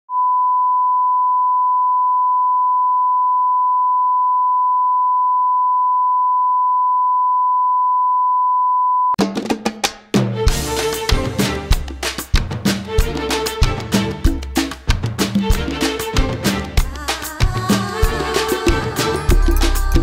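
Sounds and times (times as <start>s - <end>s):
steady test tone beep: 0.1s - 9.2s.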